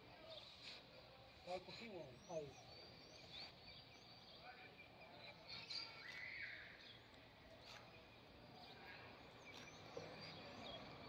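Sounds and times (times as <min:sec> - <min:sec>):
faint bird chirps: 0:00.2 - 0:11.0.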